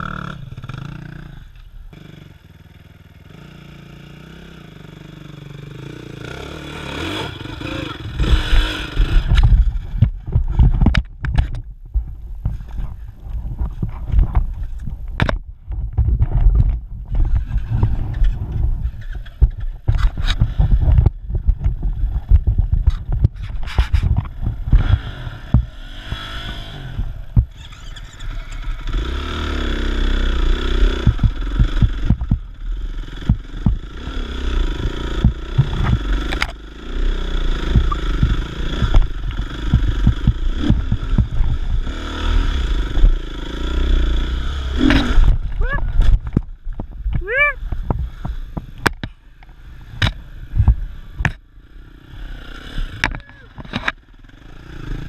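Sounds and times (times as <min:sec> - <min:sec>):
dirt bike engine revving: 0:00.0 - 0:10.7, 0:23.6 - 0:49.0, 0:49.6 - 0:55.0
bike knocking and scraping on rock: 0:08.0 - 0:26.6, 0:30.6 - 0:44.0, 0:44.7 - 0:51.4.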